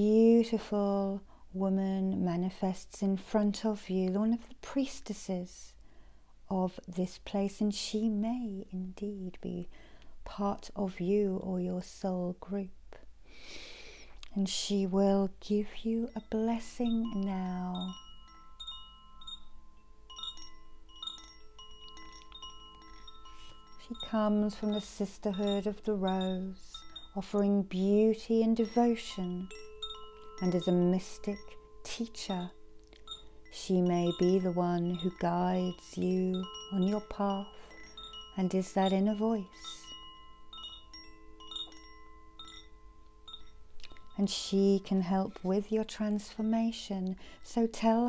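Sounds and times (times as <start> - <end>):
chimes ringing: 16.1 - 46.5.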